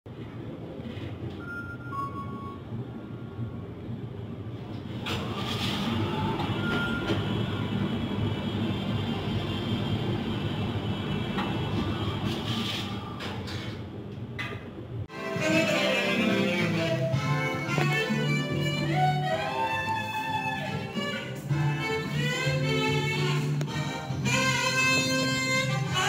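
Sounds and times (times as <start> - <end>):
low machine hum: 0.1 - 26.0
elevator doors sliding: 4.5 - 14.8.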